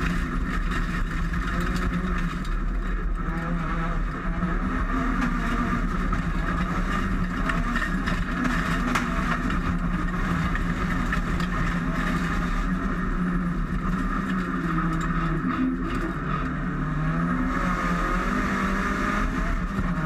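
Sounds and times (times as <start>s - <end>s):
car engine running hard: 0.0s - 20.0s
road and tyre noise: 0.0s - 20.0s.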